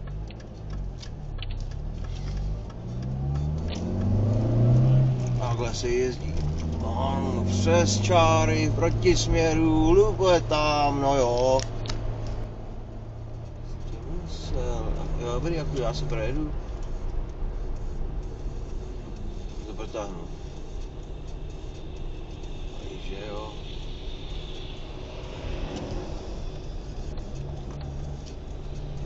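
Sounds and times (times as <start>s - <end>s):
car engine and road hum: 0.0s - 29.0s
man talking: 5.4s - 11.6s, 13.9s - 16.6s, 19.6s - 20.3s, 22.8s - 23.7s.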